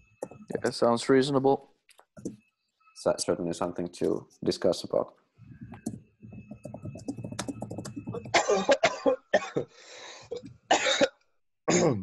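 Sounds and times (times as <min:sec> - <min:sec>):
person coughing: 0:08.2 - 0:11.1, 0:11.7 - 0:12.0
person clearing throat: 0:08.3 - 0:09.7, 0:10.3 - 0:11.1, 0:11.7 - 0:12.0
person drawing breath: 0:09.7 - 0:10.4.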